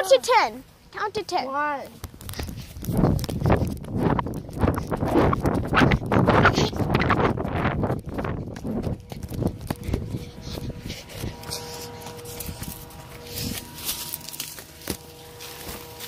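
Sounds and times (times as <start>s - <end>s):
child running footfalls: 2.0s - 16.0s.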